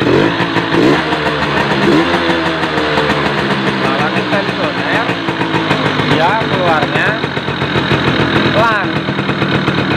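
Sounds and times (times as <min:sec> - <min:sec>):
two-stroke motorcycle engine revving: 0:00.0 - 0:09.9.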